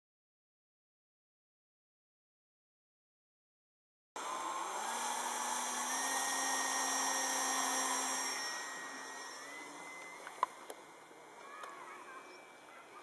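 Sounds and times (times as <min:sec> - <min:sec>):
electric motor high whine: 0:04.2 - 0:11.4.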